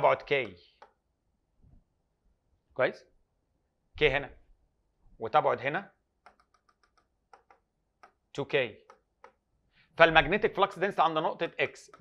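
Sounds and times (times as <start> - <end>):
pen tapping on touch screen: 0.3 - 1.0, 6.2 - 9.5.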